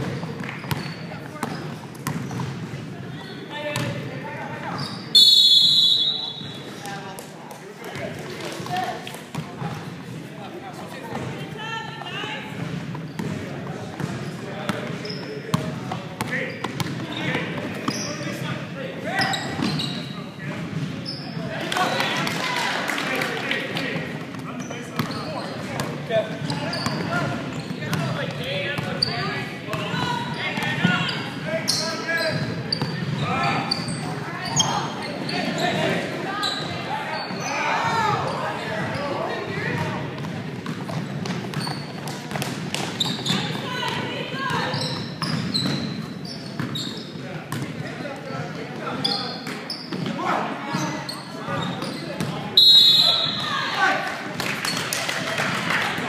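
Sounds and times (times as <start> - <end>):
basketball bouncing on wooden floor: 0.6 - 2.6.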